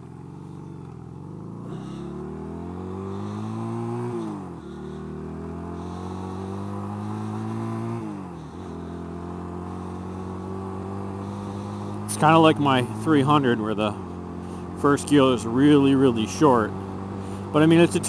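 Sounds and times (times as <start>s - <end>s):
motorcycle engine shifting gears: 0.0s - 18.0s.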